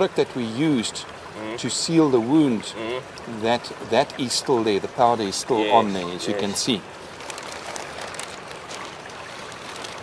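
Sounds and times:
water splashing and dripping: 0:00.0 - 0:10.0
water trickling: 0:00.0 - 0:10.0.

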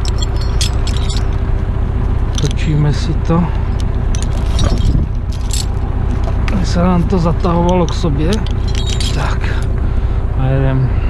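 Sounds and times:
steel chain clinking and scraping: 0:00.0 - 0:09.8
tractor diesel engine rumbling: 0:00.0 - 0:11.0.

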